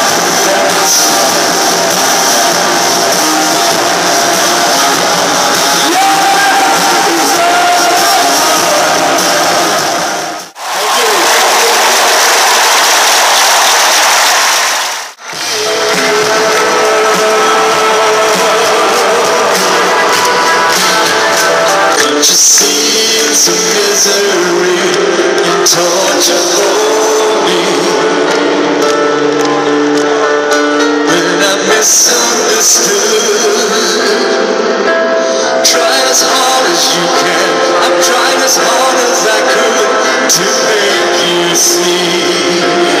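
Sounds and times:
crowd noise: 0.0 - 43.0
live band music: 0.0 - 43.0.

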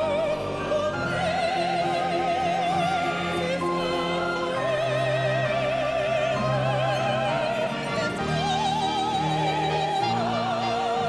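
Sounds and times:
orchestra playing: 0.0 - 11.0
woman singing operatic style: 0.0 - 11.0.

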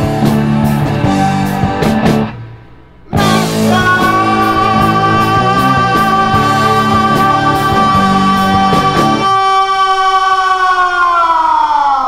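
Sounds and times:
heavy metal track: 0.0 - 10.2
electric guitar note sliding down: 0.8 - 9.4.

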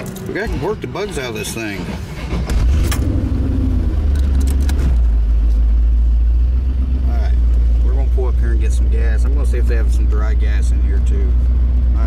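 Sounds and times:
car exhaust rumble: 0.0 - 12.0.

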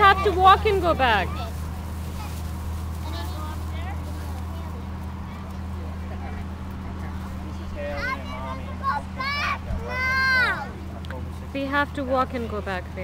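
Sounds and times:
faint distant voices: 0.0 - 13.0
low mechanical hum: 0.0 - 13.0.

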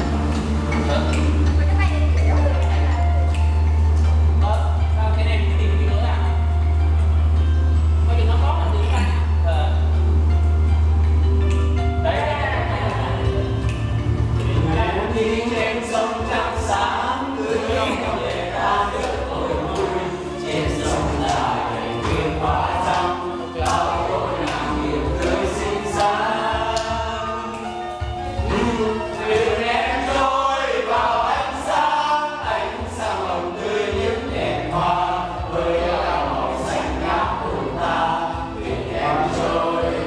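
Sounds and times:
men singing karaoke: 0.0 - 10.4, 11.3 - 40.0
loud steady low hum: 0.0 - 40.0
music over loudspeakers: 0.0 - 40.0.

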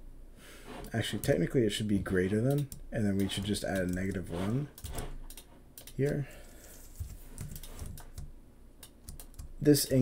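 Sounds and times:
computer keys and mouse clicks: 2.5 - 6.2, 7.0 - 9.6.

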